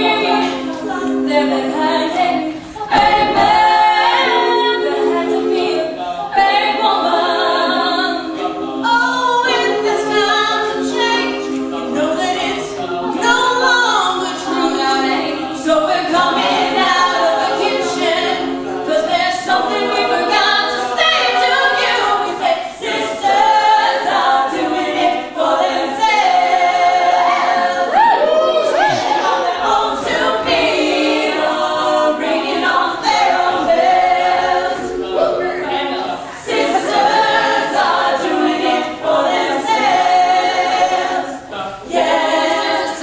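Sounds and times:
women singing a cappella: 0.0 - 43.0.

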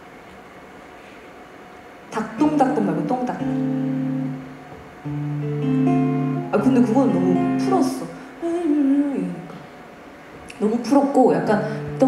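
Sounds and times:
strummed acoustic guitar chord: 3.4 - 8.2.

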